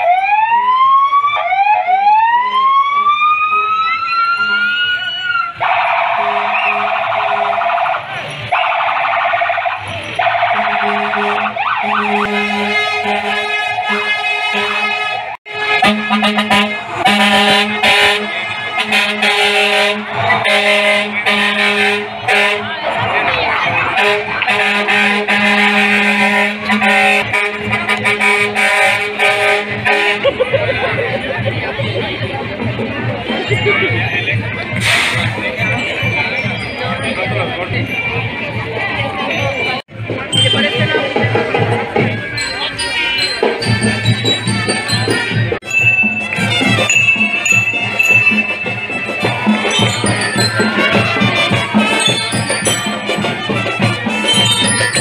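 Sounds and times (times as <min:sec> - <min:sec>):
fire truck siren: 0:00.0 - 0:30.4
two-tone air horn blast: 0:10.6 - 0:22.8, 0:23.9 - 0:30.3.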